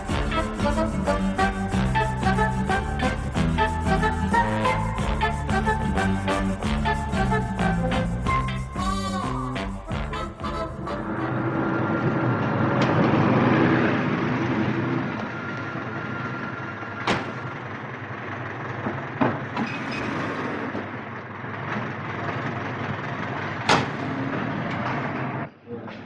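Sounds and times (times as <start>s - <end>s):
street traffic noise: 0.0s - 26.0s.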